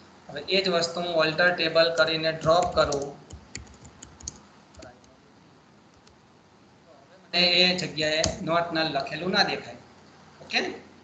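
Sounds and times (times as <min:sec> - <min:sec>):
computer keyboard typing: 0:01.9 - 0:05.2.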